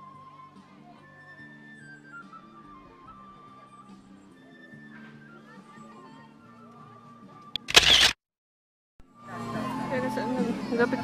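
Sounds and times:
faint background music: 0:00.0 - 0:08.0, 0:09.0 - 0:11.0
camera shutter click: 0:07.6 - 0:08.2
loud shutter snap: 0:07.6 - 0:08.2.

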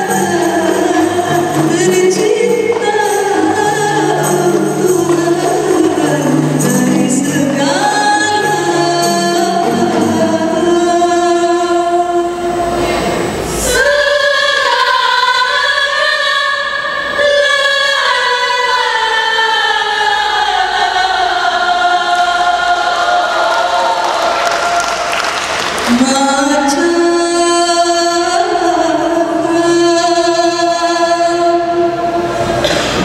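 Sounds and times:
women singing in chorus: 0:00.0 - 0:24.4, 0:25.8 - 0:33.0.

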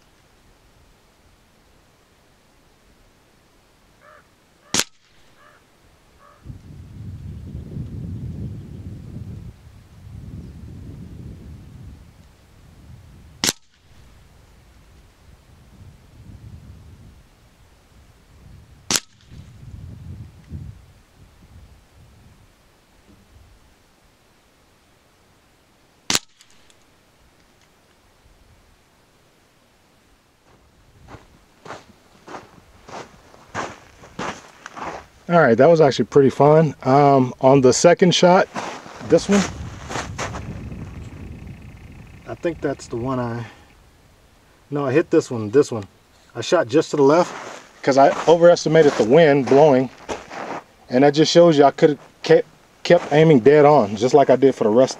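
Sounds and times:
air rifle shots: 0:04.7 - 0:05.5, 0:13.4 - 0:14.0, 0:18.9 - 0:19.5, 0:26.1 - 0:26.8
wind rumbling on microphone: 0:06.2 - 0:23.8, 0:30.5 - 0:36.8, 0:38.4 - 0:46.5.

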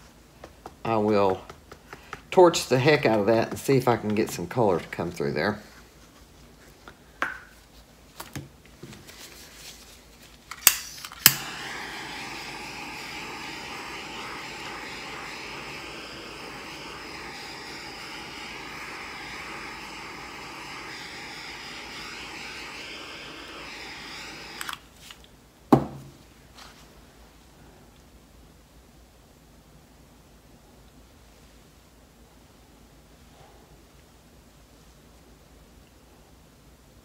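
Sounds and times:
igniter clicks: 0:10.5 - 0:11.7
torch flame hissing: 0:10.7 - 0:25.0
knock: 0:25.7 - 0:26.1.

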